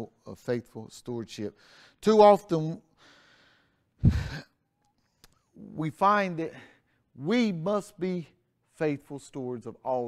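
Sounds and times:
faint in-breath: 3.0 - 4.4
man sighing heavily: 4.0 - 4.5.

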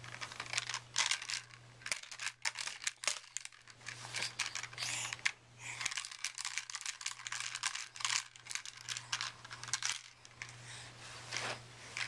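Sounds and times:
plastic toy keys clicking and rattling: 0.0 - 10.5
rustling of handling: 0.0 - 12.0.

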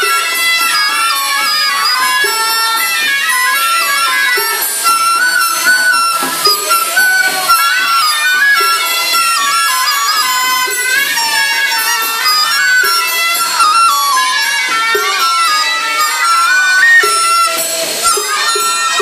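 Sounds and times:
percussion strikes: 0.0 - 19.0
reed wind instruments melody: 0.0 - 19.0.

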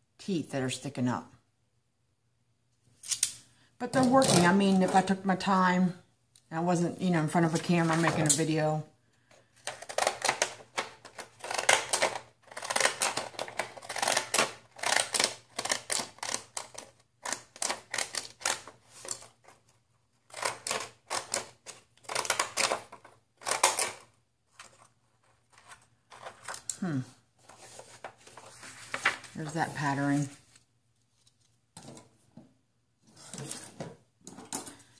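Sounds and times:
scissors snipping paper: 11.4 - 19.2.

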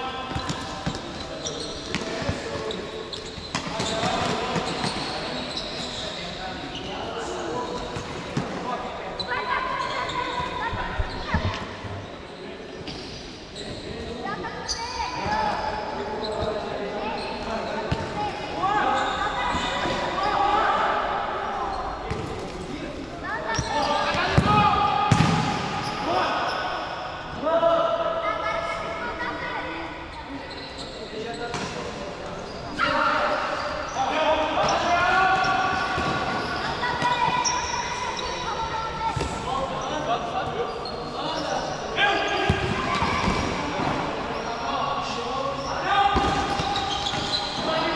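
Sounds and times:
players shouting in echoing hall: 23.2 - 30.4, 32.4 - 47.9.

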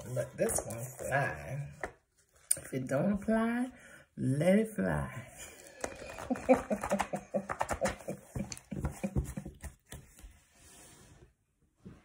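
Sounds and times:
cards tapping and clicking: 5.7 - 10.3.

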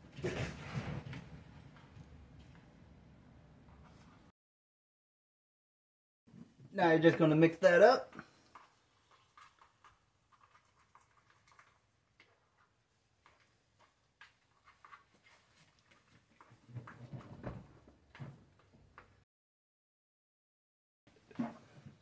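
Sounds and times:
plastic spoon stirring in pot: 8.2 - 17.0.

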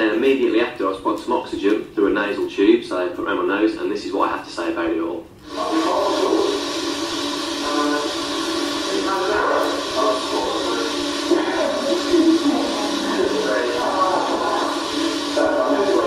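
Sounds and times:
indistinct speech: 7.6 - 16.0.

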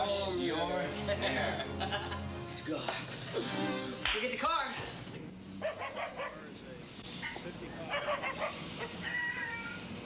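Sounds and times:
person laughing: 1.2 - 2.3
animal calls: 7.2 - 9.9.

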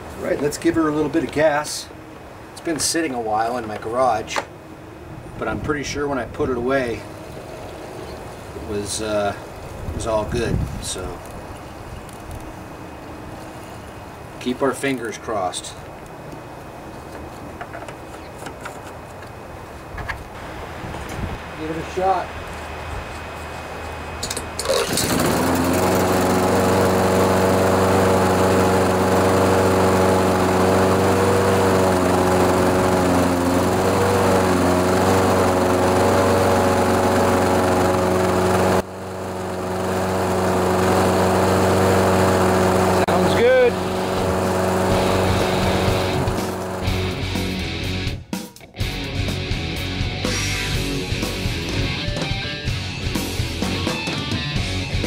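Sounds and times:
lawn mower engine running: 20.3 - 48.2, 48.8 - 55.0
rock music with electric guitar: 44.9 - 55.0.

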